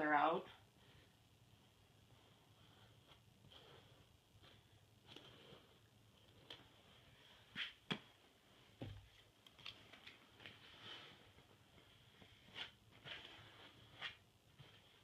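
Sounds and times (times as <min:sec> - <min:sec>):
soft ticks and scrapes: 0:02.1 - 0:07.2.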